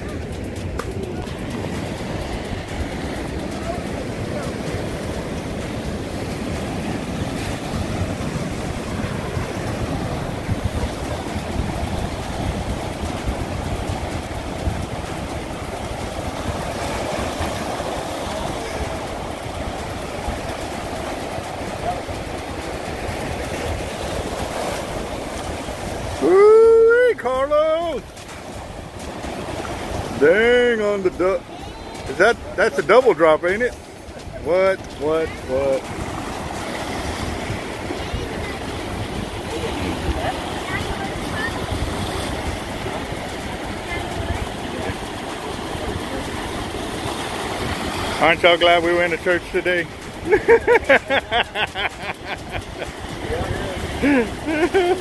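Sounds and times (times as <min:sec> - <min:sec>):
surf breaking on rocks: 0:00.0 - 0:55.0
wind on microphone: 0:00.0 - 0:55.0
person yelling: 0:26.2 - 0:28.0.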